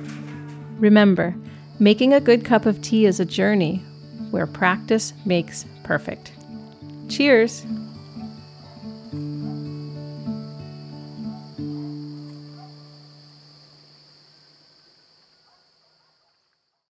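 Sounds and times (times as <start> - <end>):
high insect-like chirring: 0.1 - 16.7.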